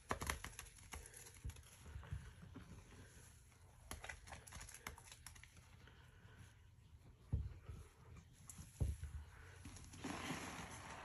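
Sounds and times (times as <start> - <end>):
sponge squelching: 7.6 - 11.0
soapy water drizzling into foam: 10.0 - 11.0.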